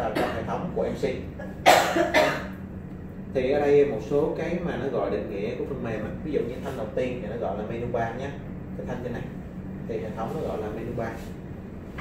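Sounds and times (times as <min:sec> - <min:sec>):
person coughing: 0:00.0 - 0:00.6, 0:01.4 - 0:02.6.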